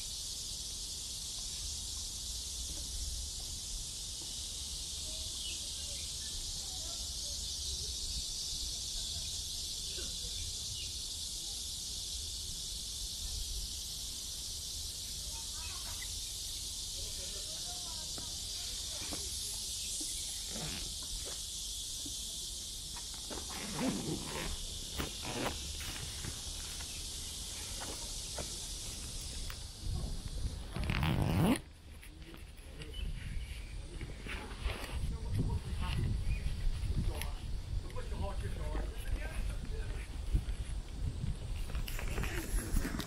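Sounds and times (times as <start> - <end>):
high-pitched insect chorus: 0.0 - 43.0.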